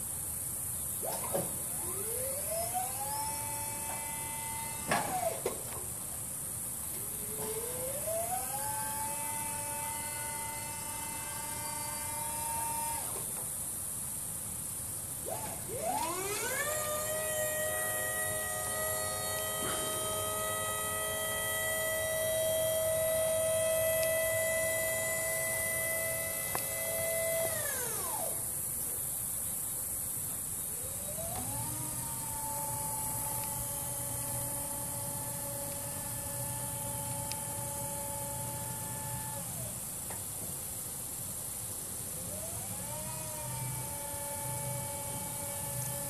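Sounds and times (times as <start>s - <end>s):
hydraulic power unit whine: 0.0s - 46.0s.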